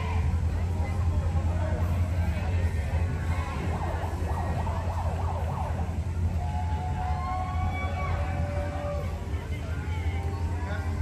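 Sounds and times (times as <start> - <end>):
steady low rumble: 0.0 - 11.0
siren-like wail: 3.4 - 8.8.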